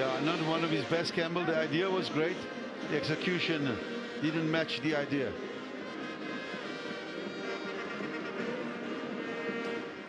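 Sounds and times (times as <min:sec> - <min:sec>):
background music with long held tones: 0:00.0 - 0:10.0.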